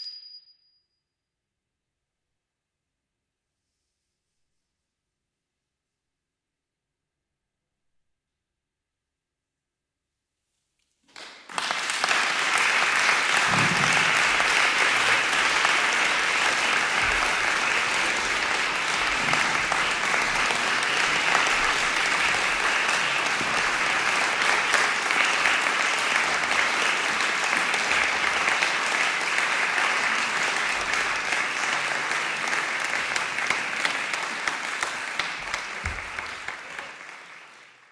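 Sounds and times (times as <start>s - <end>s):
audience applauding: 11.1s - 37.9s.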